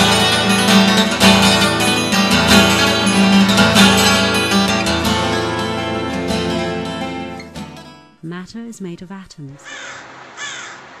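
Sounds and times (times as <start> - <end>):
crow cawing: 9.6 - 11.0.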